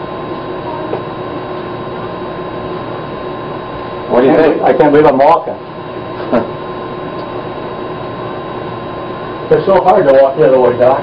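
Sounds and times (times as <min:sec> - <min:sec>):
faint constant hum: 0:00.0 - 0:11.0.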